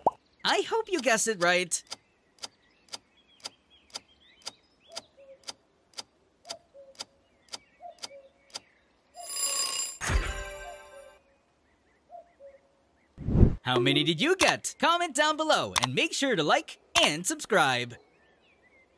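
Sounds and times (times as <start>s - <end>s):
countdown timer ticking: 13.7s - 14.6s.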